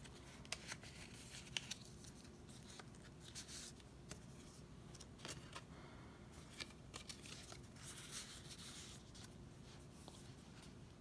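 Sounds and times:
paper rustling: 0.0s - 5.7s, 6.4s - 10.8s.

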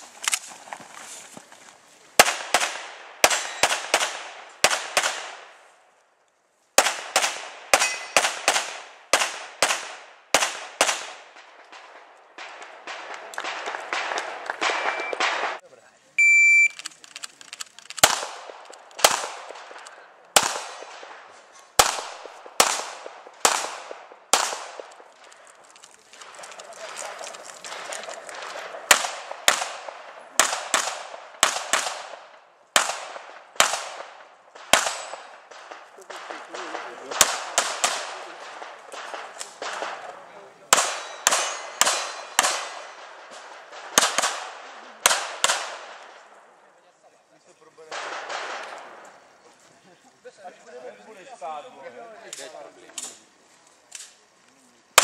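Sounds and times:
pistol shots with echo: 2.2s - 5.5s, 6.8s - 15.6s, 18.0s - 25.1s, 27.8s - 46.2s, 47.9s - 49.0s
shot timer beep: 16.2s - 16.8s.

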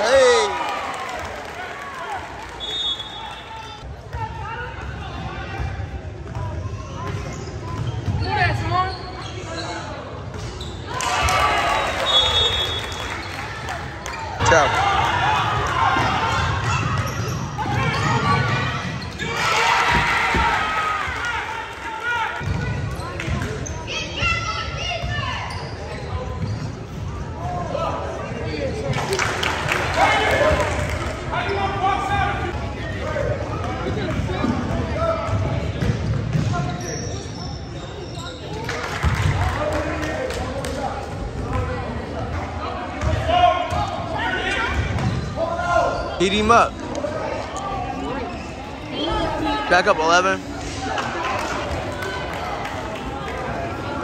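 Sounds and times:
people shouting: 0.0s - 0.8s
sneaker squeaks: 6.3s - 10.9s, 16.6s - 19.4s, 22.4s - 27.5s, 35.3s - 39.2s, 44.6s - 49.5s
voices echoing in hall: 10.9s - 54.0s.

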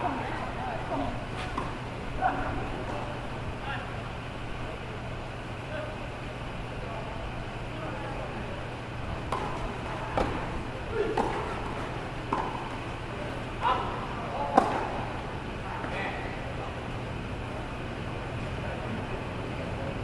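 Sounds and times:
steady low hum: 0.0s - 20.0s
tennis balls struck by rackets: 1.4s - 1.9s, 9.2s - 13.0s, 14.2s - 15.2s.

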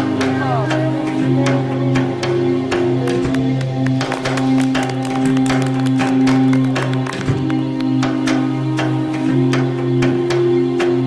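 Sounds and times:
hand clapping: 3.0s - 8.4s
upbeat band music: 3.1s - 7.9s
drum beat: 3.1s - 8.0s.

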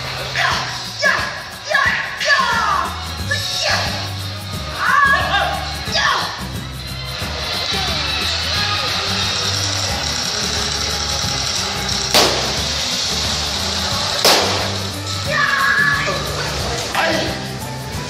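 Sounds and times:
show music with bass line: 2.7s - 15.4s
sharp bangs: 12.1s - 15.3s.

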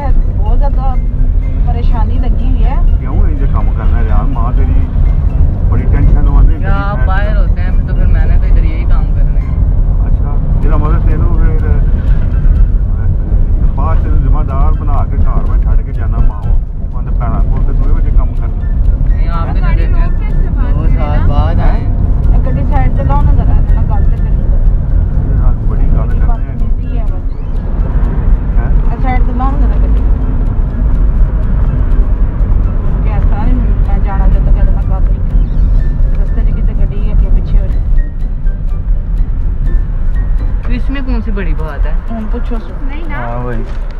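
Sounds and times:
voices talking: 0.0s - 38.8s, 40.4s - 43.9s
car cabin low rumble: 0.0s - 43.9s.

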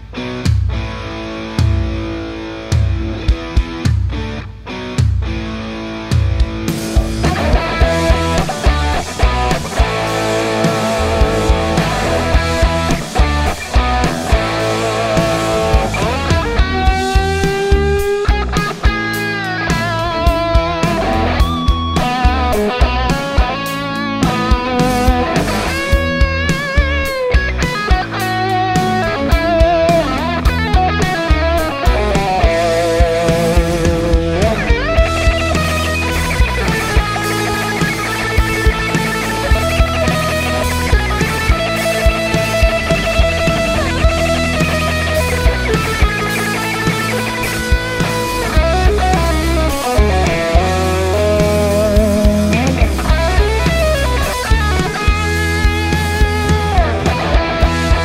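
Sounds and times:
overdriven electric guitar lead: 0.0s - 58.0s
backing track drum beat: 0.1s - 58.0s.

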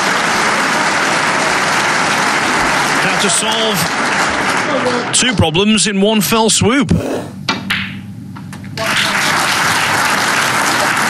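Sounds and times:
audience applause: 0.0s - 5.2s, 8.8s - 11.0s.

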